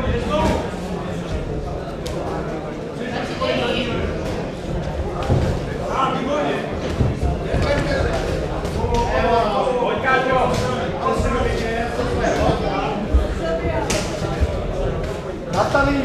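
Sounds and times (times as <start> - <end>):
voices calling out in a hall: 0.0 - 16.0.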